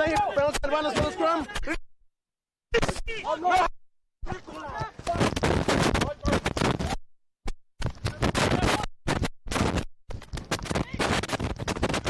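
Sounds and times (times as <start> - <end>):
loud rough crackling noise: 4.9 - 7.0, 7.8 - 12.0.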